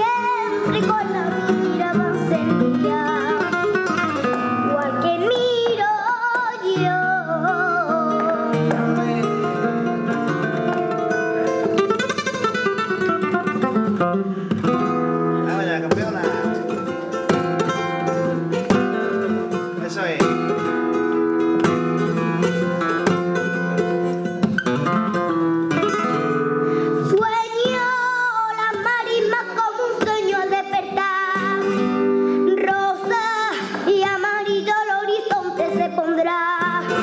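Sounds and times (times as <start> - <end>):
woman singing: 0.0 - 9.7, 27.0 - 37.0
flamenco guitar playing: 0.0 - 37.0.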